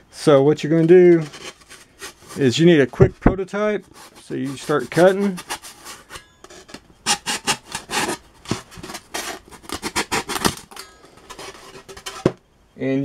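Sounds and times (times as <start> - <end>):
saw cutting through foam: 3.9 - 6.0, 7.1 - 8.2.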